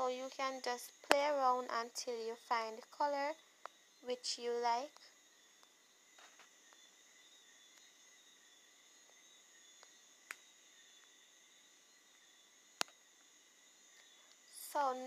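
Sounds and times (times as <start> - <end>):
faint high-pitched tone: 0.0 - 5.2, 13.9 - 15.0.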